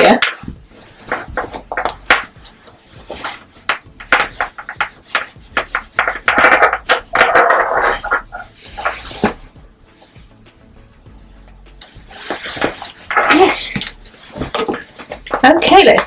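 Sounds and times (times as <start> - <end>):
fabric rustling: 0.0 - 10.4, 11.2 - 16.0.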